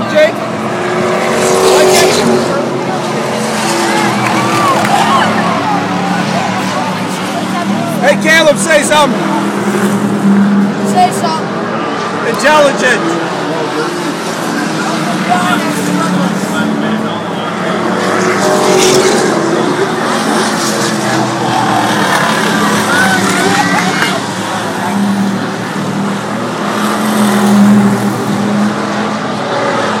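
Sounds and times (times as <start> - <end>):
crowd voices: 0.0 - 30.0
race car engines droning: 0.0 - 30.0.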